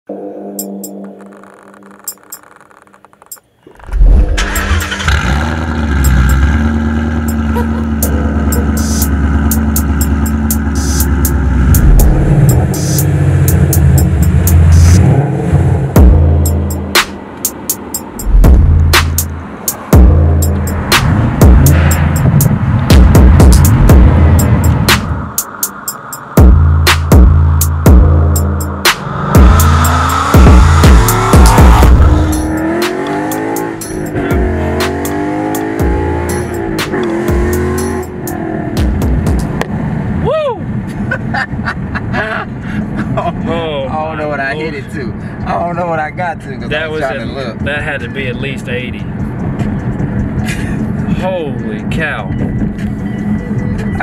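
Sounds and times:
background music with a beat: 0.4 - 2.5, 7.2 - 15.0, 16.0 - 39.7, 49.1 - 51.2, 52.3 - 54.0
car engine revving: 3.7 - 43.4.

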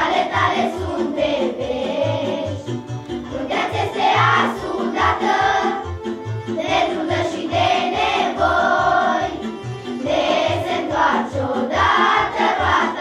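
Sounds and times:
children singing together: 0.0 - 13.0.

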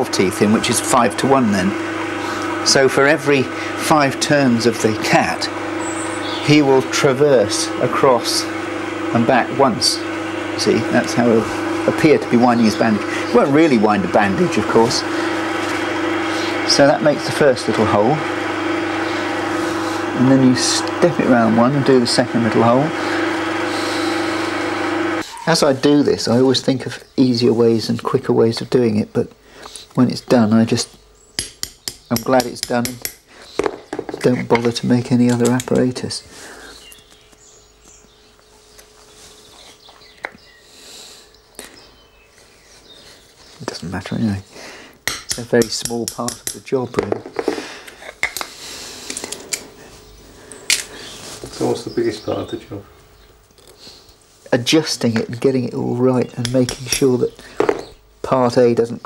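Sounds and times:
drill bit cutting wood hiss: 0.0 - 25.6
lathe motor hum: 0.0 - 26.6.

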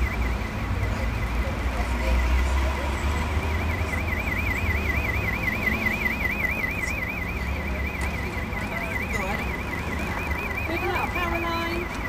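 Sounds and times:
electronic alarm warbling: 0.0 - 12.0.

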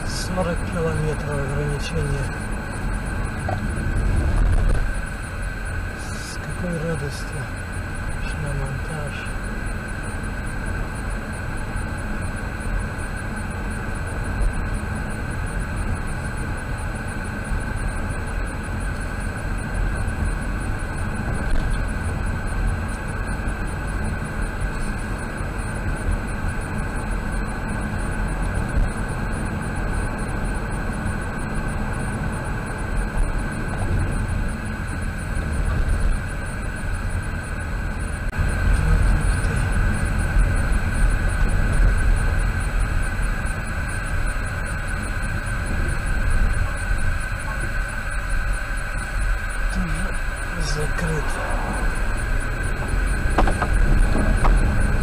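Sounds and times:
car engine rumble from inside cabin: 0.0 - 55.0.

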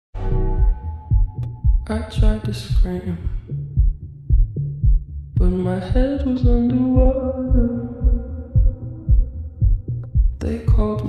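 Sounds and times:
heartbeat thumps: 0.4 - 11.0.

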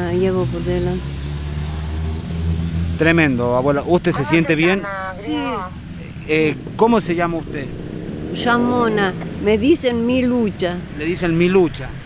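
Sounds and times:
vehicle engine idling: 2.5 - 12.0.

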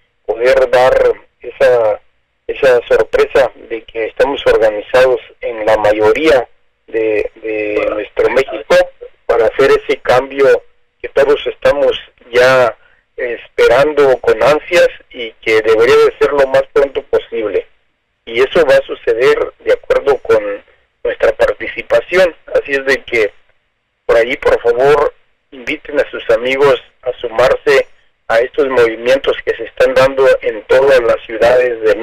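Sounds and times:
person talking over telephone line: 0.3 - 17.7, 18.3 - 23.4, 24.1 - 32.0.

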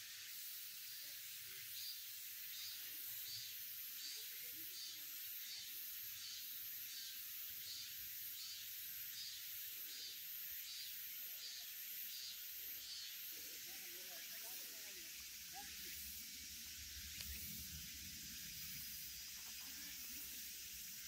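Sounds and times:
faint insect chorus: 0.0 - 21.0.

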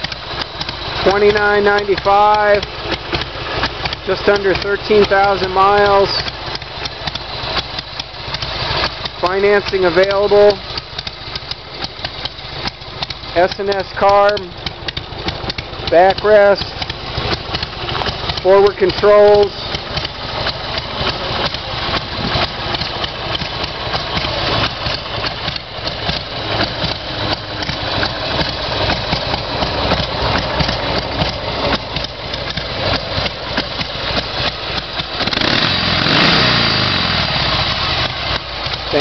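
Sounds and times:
motorcycle engine idling and revving: 0.0 - 39.0.

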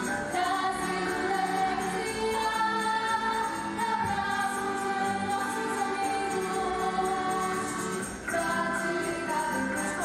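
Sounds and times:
music: 0.0 - 10.0
women singing together: 0.0 - 10.0.

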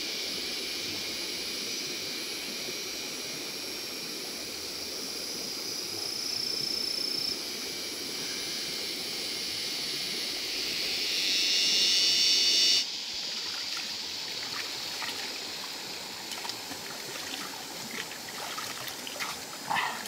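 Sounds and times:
high-pitched buzz: 6.8 - 13.0
river water flowing: 12.8 - 20.0
hands splashing in water: 16.3 - 20.0.

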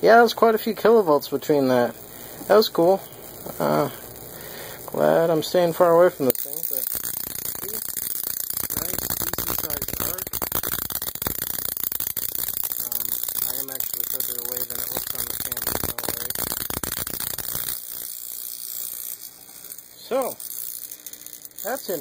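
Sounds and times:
high-voltage arcing crackle: 0.0 - 22.0.

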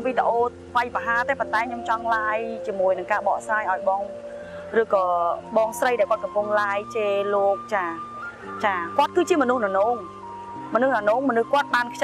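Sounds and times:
woman talking: 0.0 - 4.1, 4.7 - 10.1, 10.7 - 12.0
background music of held tones: 0.0 - 12.0.

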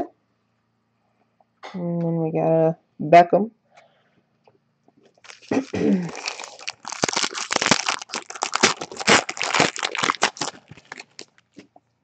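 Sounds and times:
wrapper crinkling and tearing: 5.2 - 11.7.

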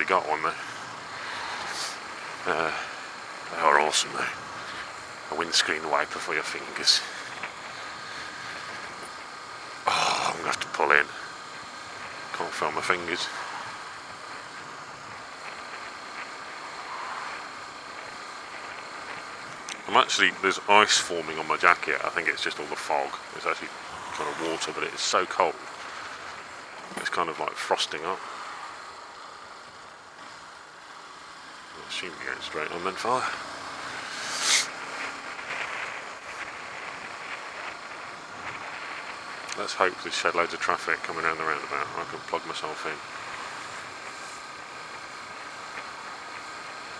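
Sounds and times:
motorcycle engine: 0.0 - 46.9
wind and road noise: 0.0 - 46.9.

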